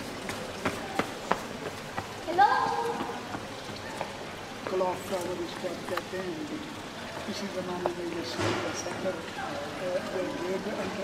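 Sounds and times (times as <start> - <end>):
footsteps on stone street: 0.0 - 11.0
street noise hiss: 0.0 - 11.0.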